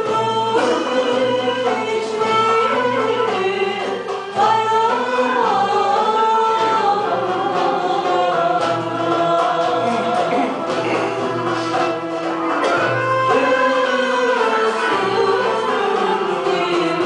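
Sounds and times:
choir singing slow song: 0.6 - 1.3, 4.4 - 11.7.

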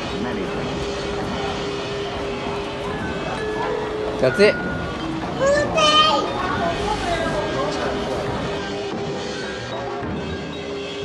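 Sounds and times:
background music: 0.0 - 11.0
child calling out: 5.4 - 6.4.

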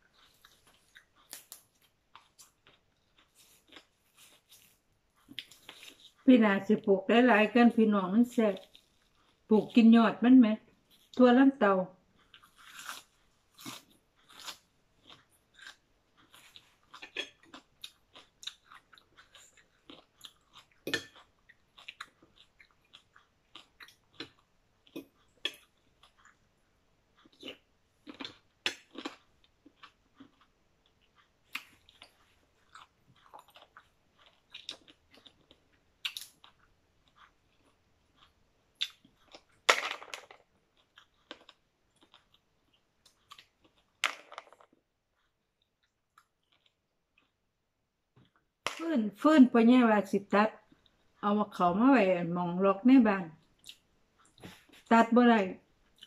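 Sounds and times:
person chewing raw greens: 0.0 - 6.3, 8.6 - 9.5, 12.1 - 39.6, 40.6 - 44.0, 44.6 - 47.6, 53.4 - 54.8, 55.7 - 56.0.

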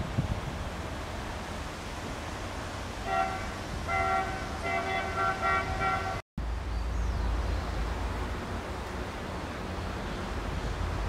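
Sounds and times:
vehicle horn short toots: 3.1 - 6.2.

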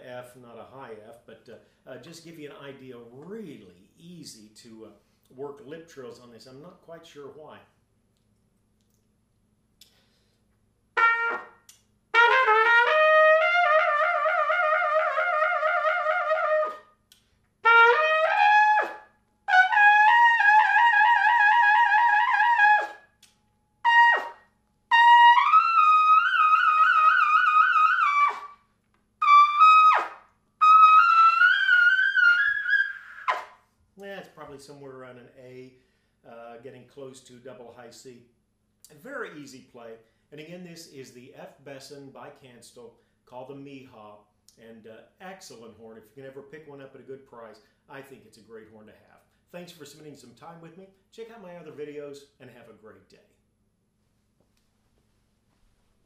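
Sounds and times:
trumpet playing lip trills: 11.0 - 17.0, 17.6 - 23.2, 23.8 - 33.6.

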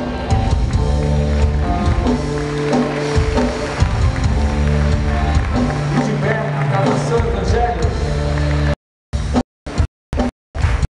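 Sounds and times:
live worship band music: 0.0 - 8.8
steady drum beat: 0.0 - 10.8.

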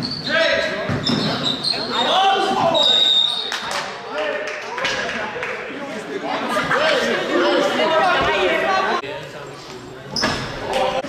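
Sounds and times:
voices calling out and chattering: 0.0 - 4.1, 4.8 - 11.0.

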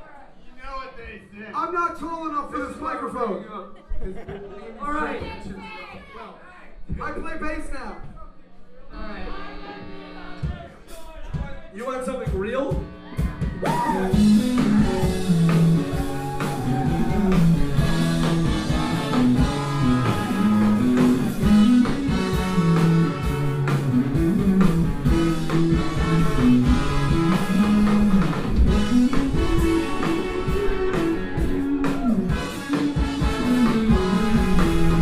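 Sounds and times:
bass: 8.9 - 35.0
drum kit: 9.8 - 35.0
electric guitar: 12.8 - 35.0
horn section held notes: 14.1 - 35.0.

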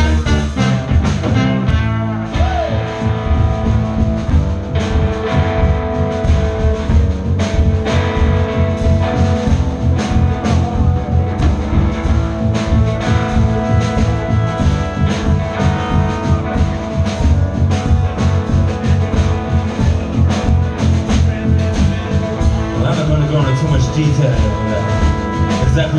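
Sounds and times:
bass guitar: 0.0 - 25.9
drum kit beat: 0.0 - 25.9
electric guitar: 0.0 - 25.9.

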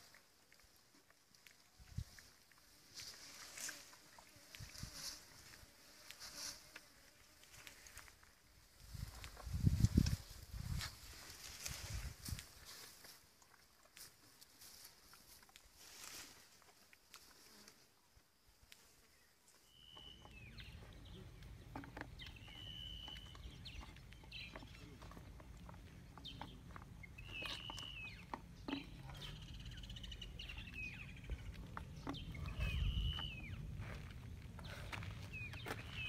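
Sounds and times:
bird whistling: 22.3 - 23.5, 27.2 - 28.3, 32.4 - 33.6
steady low rumble: 29.3 - 36.0.

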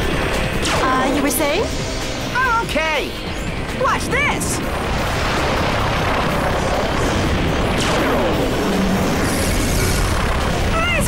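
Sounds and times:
battle blasts and rushing noise: 0.0 - 11.0.

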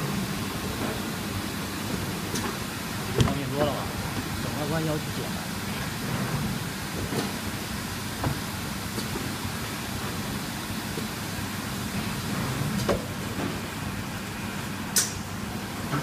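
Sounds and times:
low machinery hum: 0.0 - 16.0.

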